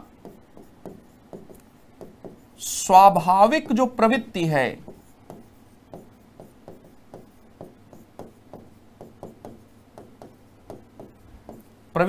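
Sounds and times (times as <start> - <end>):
stylus tapping and scratching: 0.0 - 12.0.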